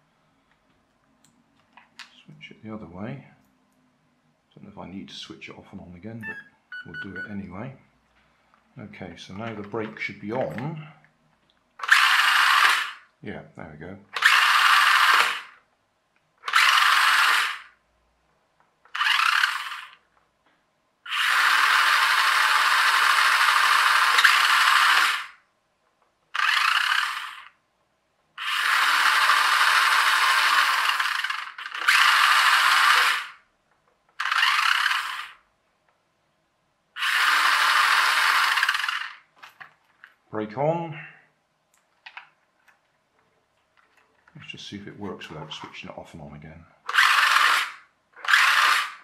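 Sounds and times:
toy car electric motor whirring: 0:11.8 - 0:13.1, 0:14.2 - 0:15.6, 0:16.4 - 0:17.8, 0:18.9 - 0:20.0, 0:21.1 - 0:25.4, 0:26.3 - 0:27.6, 0:28.4 - 0:33.4, 0:34.1 - 0:35.4, 0:37.0 - 0:39.3, 0:46.9 - 0:49.0.

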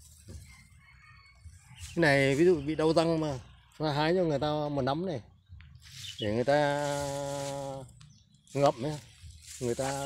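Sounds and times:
faint chicken clucking: 0:00.0 - 0:10.0.

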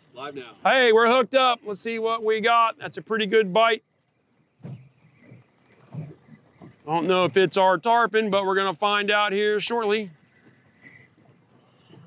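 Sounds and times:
faint wind: 0:00.0 - 0:12.0
water noise: 0:00.0 - 0:12.0.

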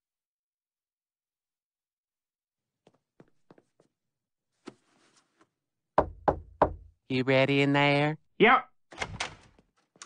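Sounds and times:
knuckles knocking on door: 0:06.0 - 0:06.9.

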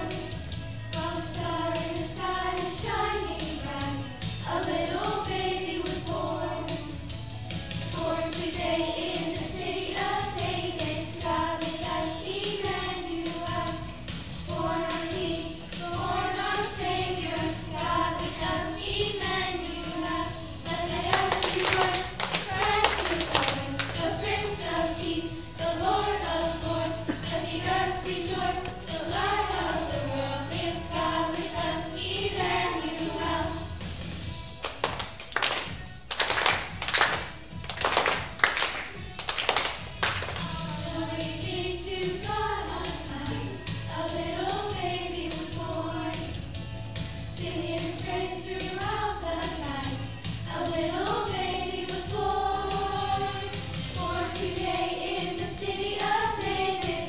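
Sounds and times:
children singing: 0:00.0 - 0:07.1, 0:07.9 - 0:33.8, 0:40.4 - 0:46.4, 0:47.3 - 0:57.0
musical accompaniment: 0:00.0 - 0:57.0
group clapping in rhythm: 0:01.0 - 0:03.2, 0:14.6 - 0:17.2, 0:20.7 - 0:29.9, 0:34.5 - 0:40.8, 0:51.0 - 0:57.0
children clapping in rhythm: 0:21.0 - 0:24.8, 0:34.6 - 0:40.6.

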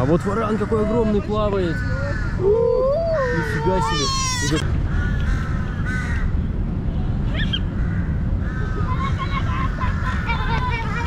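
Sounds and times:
crows cawing: 0:00.2 - 0:06.4, 0:07.4 - 0:10.4
children's voices: 0:08.8 - 0:11.0.

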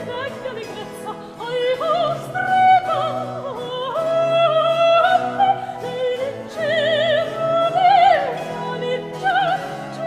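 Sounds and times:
high voice singing opera: 0:00.0 - 0:10.0.

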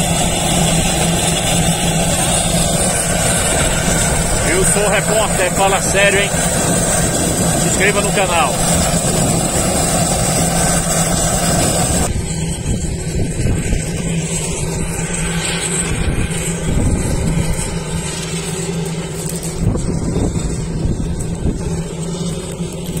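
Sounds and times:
turboprop engine droning: 0:00.0 - 0:23.0.

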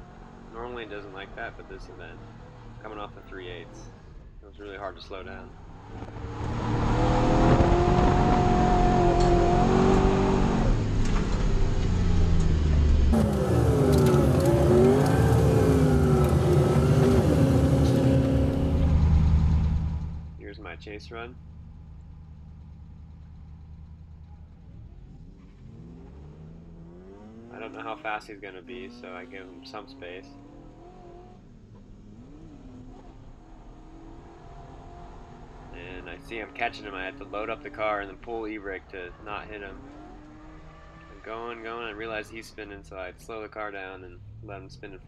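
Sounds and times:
car engine revving: 0:00.0 - 0:45.0.

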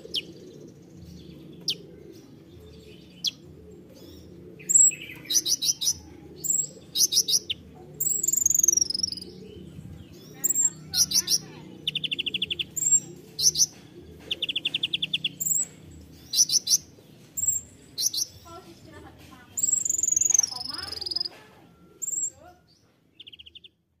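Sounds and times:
sunbird singing: 0:00.0 - 0:23.9.

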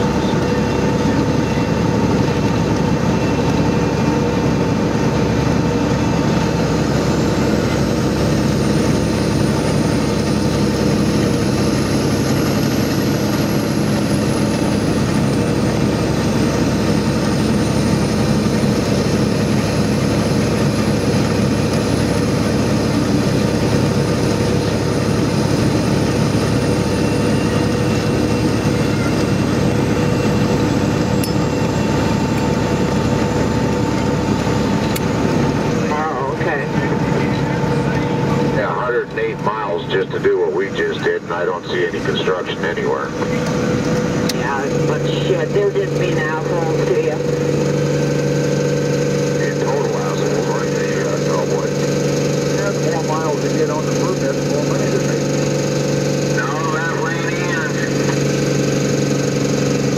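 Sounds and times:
road noise: 0:00.0 - 0:59.9
truck engine drone: 0:00.0 - 0:59.9.

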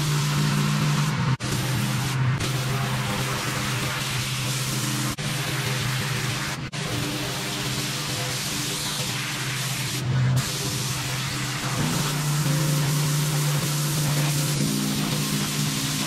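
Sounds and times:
pressure washer spraying concrete: 0:00.0 - 0:16.0.

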